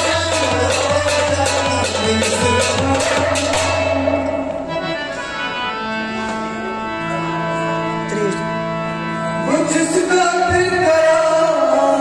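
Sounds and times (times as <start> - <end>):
percussion strikes: 0.0 - 5.3
harmonium chords: 0.0 - 12.0.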